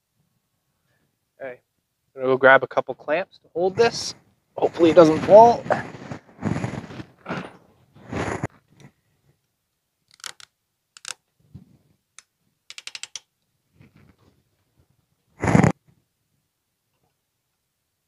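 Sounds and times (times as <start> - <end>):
rustling: 3.8 - 9.4
heavy thump: 6.6 - 7.7
clamp clicking: 10.1 - 11.2, 12.2 - 13.2.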